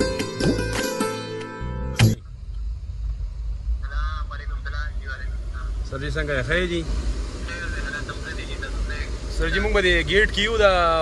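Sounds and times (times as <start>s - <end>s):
car engine rumble inside cabin: 1.9s - 11.0s.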